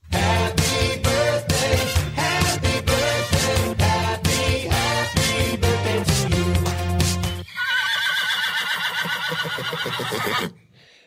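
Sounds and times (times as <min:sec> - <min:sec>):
horse whinnying: 0:07.4 - 0:10.6.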